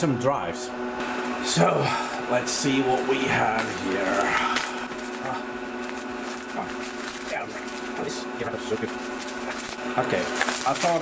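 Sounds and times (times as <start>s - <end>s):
server humming: 0.0s - 11.0s
bubble wrap crinkling: 2.2s - 11.0s.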